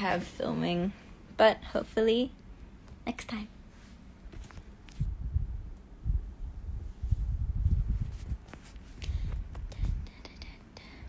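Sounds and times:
woman whispering: 0:09.7 - 0:11.0.

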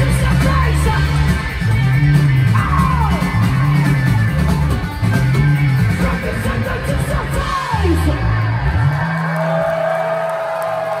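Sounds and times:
live rock band playing: 0:00.0 - 0:09.8
sliding bass notes: 0:00.0 - 0:09.8.

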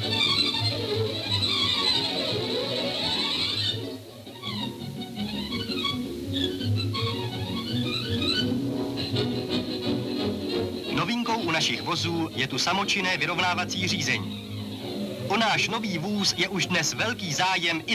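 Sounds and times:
orchestral string music: 0:00.0 - 0:17.9.

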